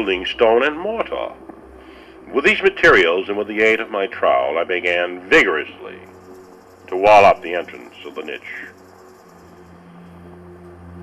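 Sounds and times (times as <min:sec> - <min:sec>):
tape hiss: 0:00.0 - 0:10.3
low music drone: 0:00.0 - 0:11.0.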